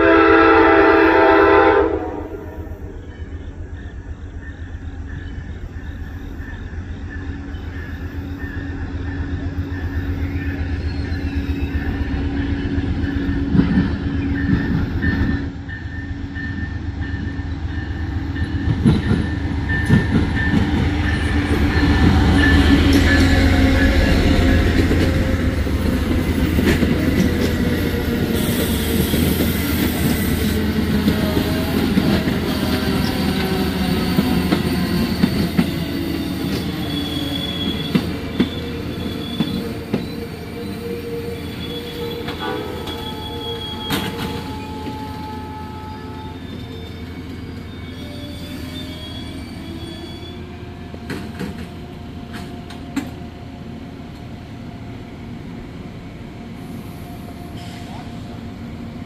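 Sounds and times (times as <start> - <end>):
diesel locomotive engine rumble: 0.0 - 59.0
wheel and brake squeals: 3.0 - 25.1, 28.4 - 50.6
train wheels clicking over rail joints: 12.5 - 40.2, 50.9 - 53.2.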